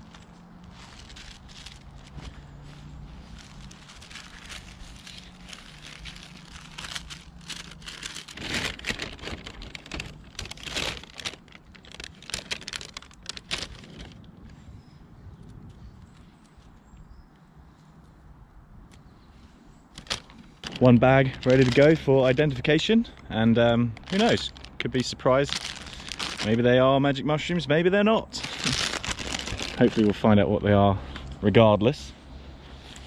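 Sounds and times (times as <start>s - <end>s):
paper bag crinkling: 0.0s - 14.3s, 20.0s - 22.9s, 23.6s - 26.9s, 28.3s - 30.3s
mushrooms dropping into bag: 3.4s - 14.2s, 20.0s - 22.4s, 23.9s - 26.7s, 28.4s - 30.2s.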